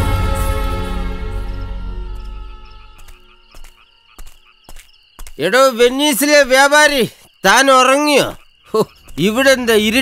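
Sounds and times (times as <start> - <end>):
high-pitched chirring: 0.4 - 4.2
frogs croaking: 1.0 - 10.0.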